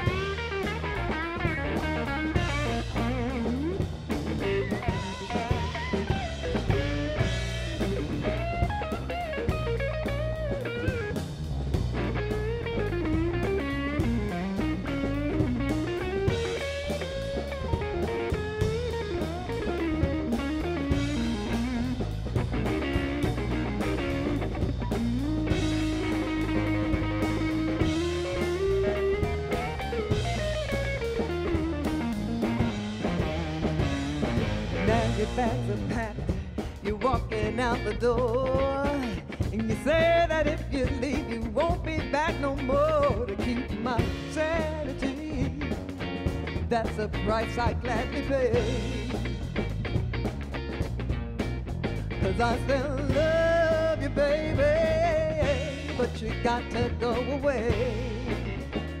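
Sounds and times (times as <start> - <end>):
blues electric guitar solo: 0.0 - 59.0
drum kit: 0.0 - 59.0.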